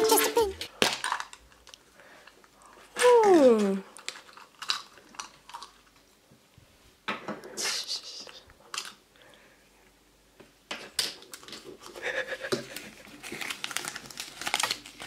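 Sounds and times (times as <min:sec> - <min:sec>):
paper crinkling: 0:12.7 - 0:15.0.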